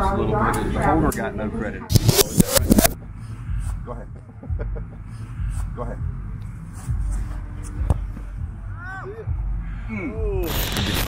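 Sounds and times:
foot kicking football thud: 7.8s - 8.4s.

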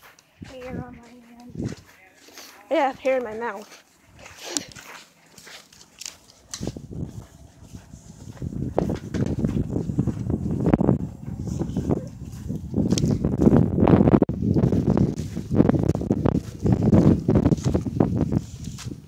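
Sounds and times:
wind buffeting microphone: 0.0s - 2.0s, 6.2s - 19.0s.

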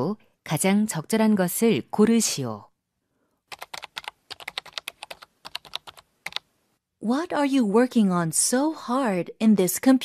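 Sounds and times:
typing on computer keyboard: 3.5s - 6.5s.

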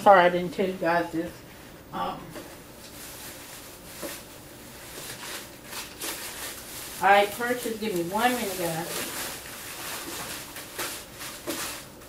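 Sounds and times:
rustling of rummaging: 2.3s - 12.0s.

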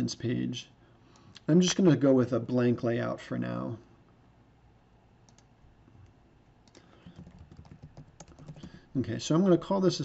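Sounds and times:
typing on computer keyboard: 6.7s - 8.8s.

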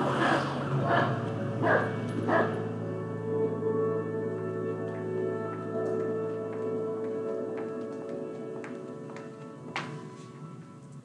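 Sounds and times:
soft ambient music: 0.0s - 11.0s
dog barking: 0.2s - 2.6s.

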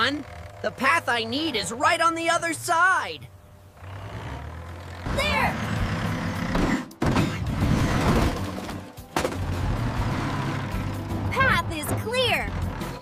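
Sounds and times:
cartoon bulldozer engine rumble: 0.0s - 13.0s.

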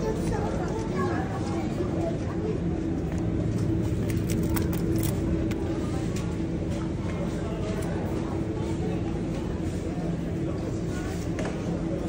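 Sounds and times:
refrigerated cabinets humming: 0.0s - 12.0s
plastic packaging crackling: 4.0s - 5.2s.

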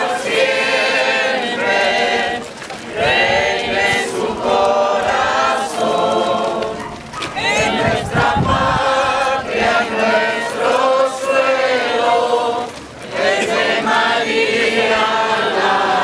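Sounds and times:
crowd singing a hymn: 0.0s - 16.0s.

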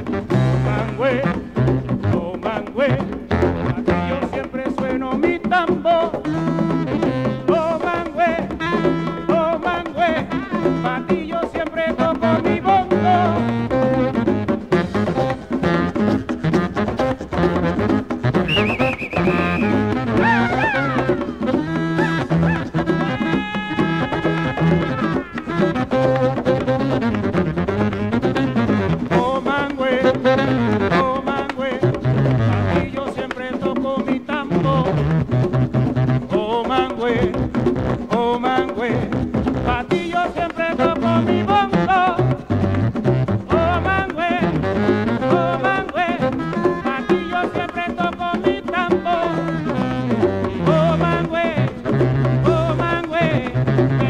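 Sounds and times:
saxophone melody: 0.0s - 2.3s, 3.3s - 4.4s, 6.2s - 11.4s, 12.0s - 33.1s, 40.8s - 54.0s
hand drums and percussion: 0.0s - 54.0s
stepping bass line: 18.3s - 21.1s.

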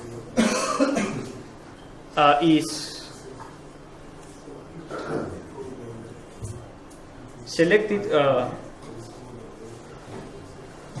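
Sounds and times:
man coughing: 0.4s - 1.4s, 4.9s - 5.4s.

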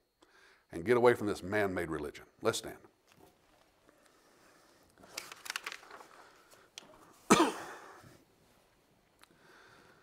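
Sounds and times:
man clearing throat: 7.3s - 8.1s.

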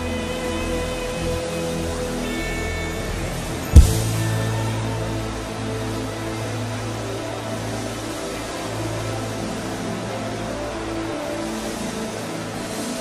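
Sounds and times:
sustained keyboard chords: 2.4s - 13.0s
low bass note: 3.8s - 5.5s.

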